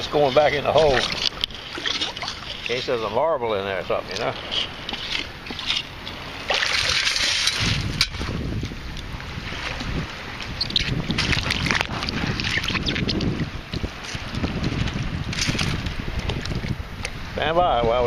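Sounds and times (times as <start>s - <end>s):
water sloshing and churning: 0.0s - 18.0s
wind buffeting microphone: 0.0s - 18.0s.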